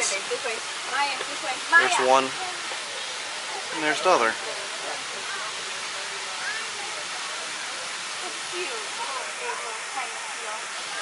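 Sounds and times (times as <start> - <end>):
faint distant voices: 0.0 - 11.0
running water rushing: 0.0 - 11.0.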